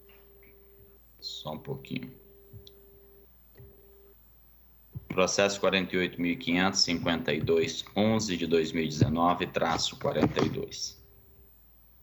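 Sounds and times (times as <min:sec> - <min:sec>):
faint electrical hum: 0:00.0 - 0:12.0.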